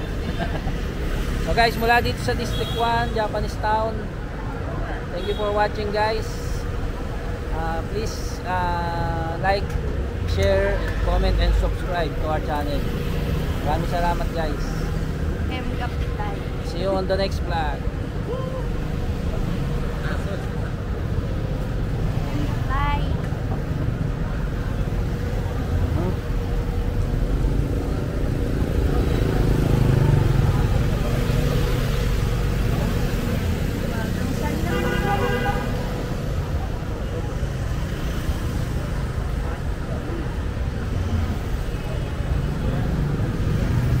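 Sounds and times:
traffic engines and road noise: 0.0s - 44.0s.

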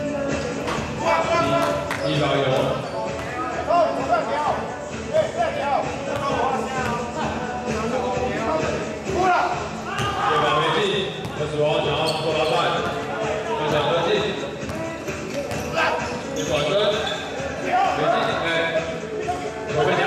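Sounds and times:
people's voices in a hall: 0.0s - 20.0s
basketball bouncing on court floor: 10.0s - 10.2s.

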